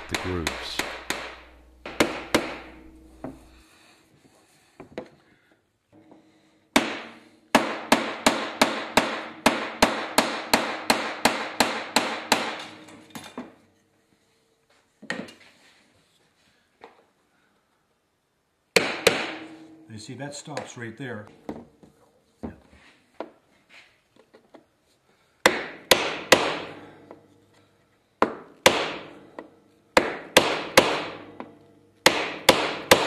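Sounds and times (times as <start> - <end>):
mallet hammering copper sheet: 0.0 - 3.6, 6.7 - 13.3, 18.8 - 20.7, 25.4 - 27.4, 28.2 - 33.0
metal sheet ringing: 0.0 - 3.7, 19.0 - 21.9.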